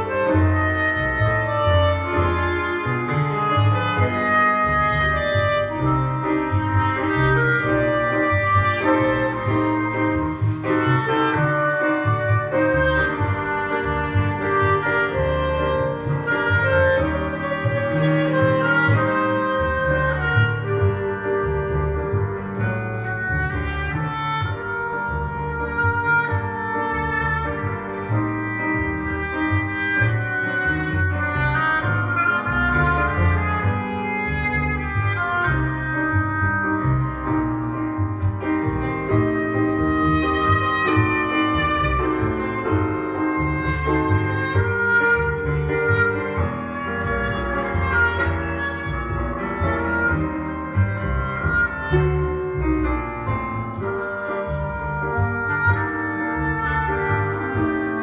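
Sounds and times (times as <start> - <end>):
oboe melody: 0.0 - 58.0
piano: 0.0 - 58.0
plucked double bass: 0.0 - 58.0.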